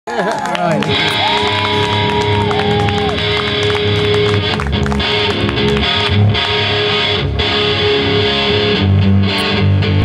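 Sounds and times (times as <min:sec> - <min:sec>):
rock band playing live: 0:00.9 - 0:10.0.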